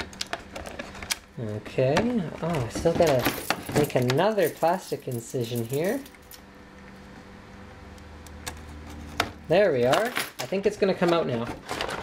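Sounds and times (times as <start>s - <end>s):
low room tone hum: 0.0s - 12.0s.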